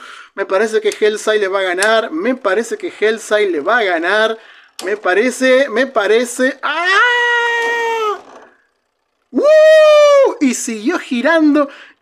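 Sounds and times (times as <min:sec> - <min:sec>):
man's high-pitched cry: 0:06.7 - 0:08.2, 0:09.4 - 0:10.4.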